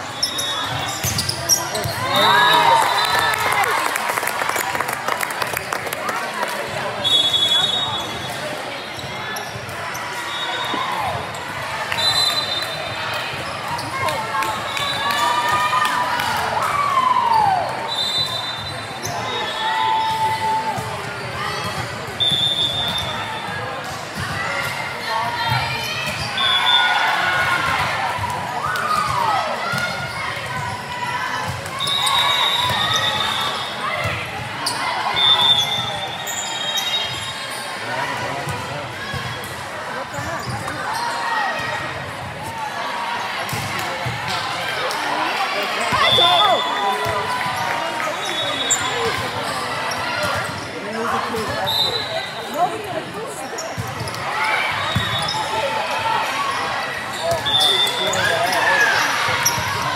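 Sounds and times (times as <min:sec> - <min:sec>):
players' voices echoing: 0:00.0 - 0:17.9, 0:37.5 - 0:59.9
referee whistle blasts: 0:07.0 - 0:08.2, 0:11.9 - 0:12.8, 0:17.8 - 0:20.2, 0:22.2 - 0:23.2, 0:31.8 - 0:33.8, 0:35.1 - 0:37.3, 0:45.9 - 0:47.2, 0:51.6 - 0:52.3, 0:54.8 - 0:55.6, 0:57.2 - 0:58.3.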